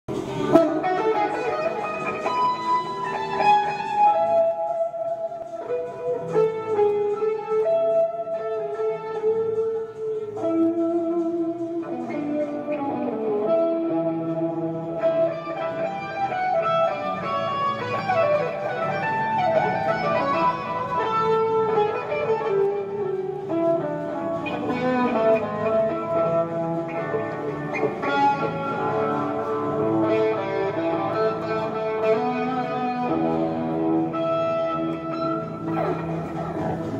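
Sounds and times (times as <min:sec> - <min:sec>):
electric guitar solo: 0:00.1 - 0:36.9.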